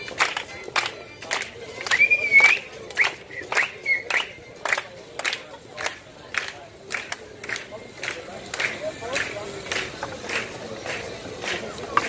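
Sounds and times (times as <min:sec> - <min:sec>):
hum of crowd voices: 0:00.0 - 0:12.0
people clapping in steady beat: 0:00.0 - 0:12.0.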